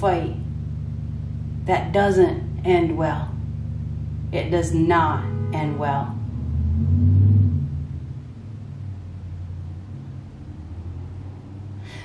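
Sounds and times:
low rumble with hum: 0.0 - 12.0.

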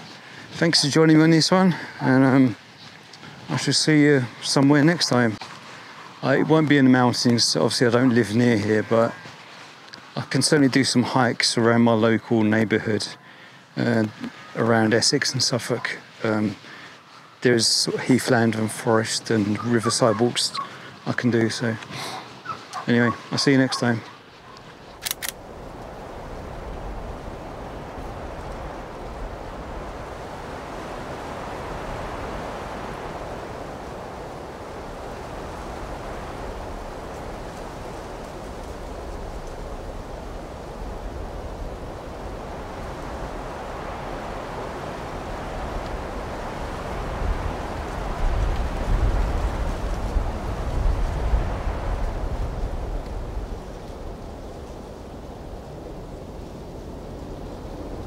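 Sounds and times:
wind gusts buffeting microphone: 0.0 - 16.8, 17.4 - 58.0.

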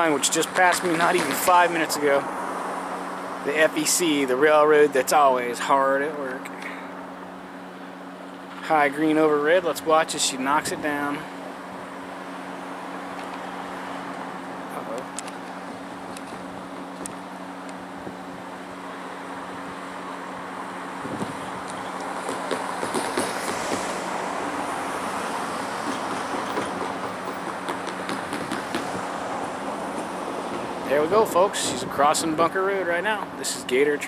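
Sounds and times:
diesel locomotive rumble: 0.0 - 34.0.

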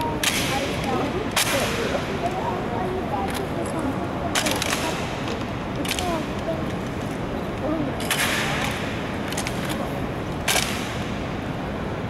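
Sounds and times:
murmur of onlookers: 0.0 - 11.2.

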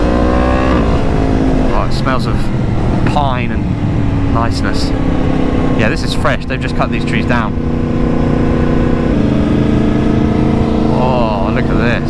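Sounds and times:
motorcycle engine cruising: 0.0 - 12.0
road noise: 0.0 - 12.0.

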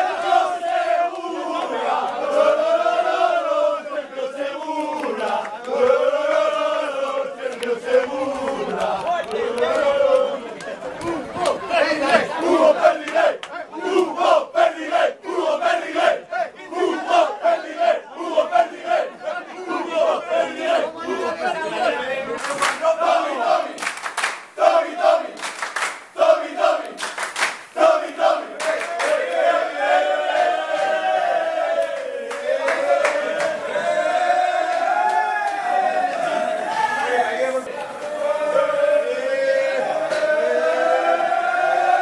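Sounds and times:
group chanting and shouting: 0.0 - 42.0.

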